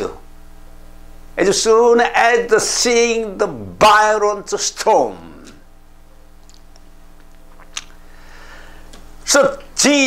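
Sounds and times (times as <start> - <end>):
man's voice: 0.0 - 0.2, 1.4 - 5.6, 9.2 - 10.0
low electrical hum: 0.0 - 10.0.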